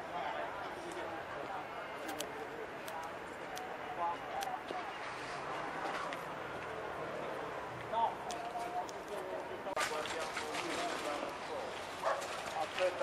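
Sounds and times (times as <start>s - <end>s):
people talking outdoors: 0.0s - 13.0s.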